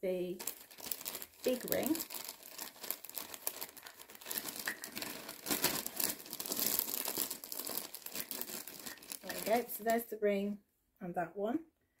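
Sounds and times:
plastic packaging crinkling: 0:00.3 - 0:10.0.

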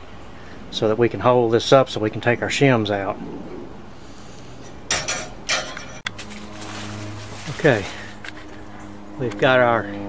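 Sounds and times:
steady low hum: 0:01.9 - 0:10.0
metallic clatters: 0:04.6 - 0:06.1.

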